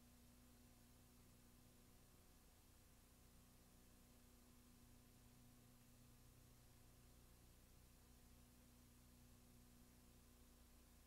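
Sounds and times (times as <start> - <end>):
low electrical hum: 0.0 - 11.0
videotape hiss: 0.0 - 11.0.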